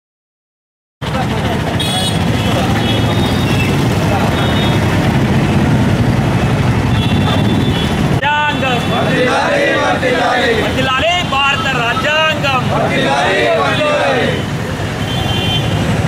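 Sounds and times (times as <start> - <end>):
indistinct crowd voices: 1.0 - 15.0
low rumble of traffic: 1.0 - 16.0.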